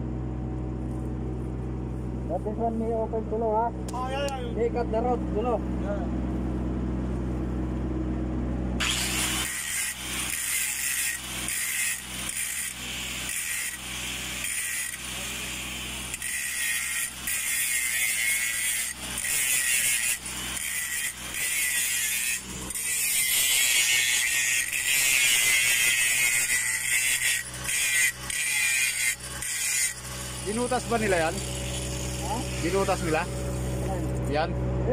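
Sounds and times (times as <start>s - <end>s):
steady low hum: 0.0s - 34.9s
angle grinder grinding steel: 8.8s - 34.3s.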